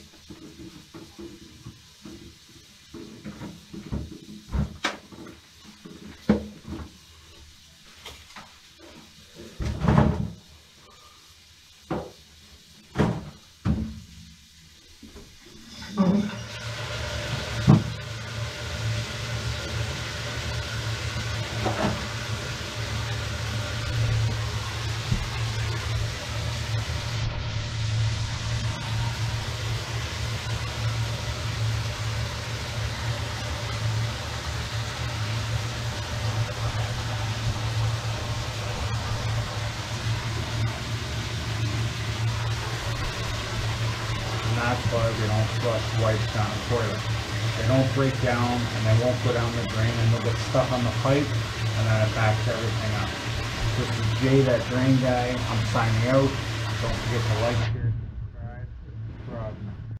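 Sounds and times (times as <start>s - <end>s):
drain snake motor humming: 15.6s - 57.9s.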